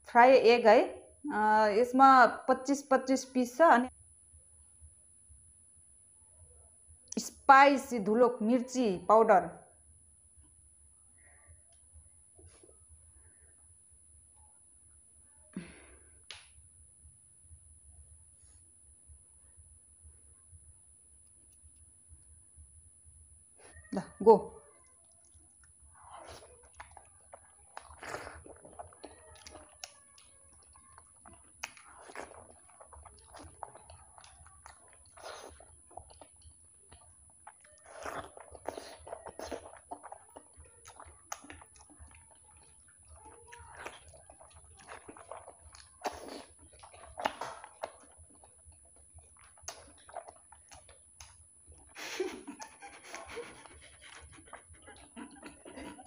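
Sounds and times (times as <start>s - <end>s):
wet chewing and lip-smacking: 25.0s - 56.0s.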